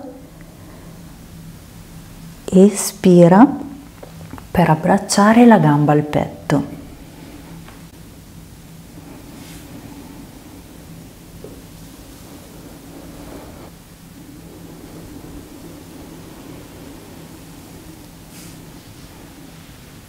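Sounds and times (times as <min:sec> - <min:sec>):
faint hiss: 0:00.0 - 0:20.0
low hum: 0:00.0 - 0:20.0.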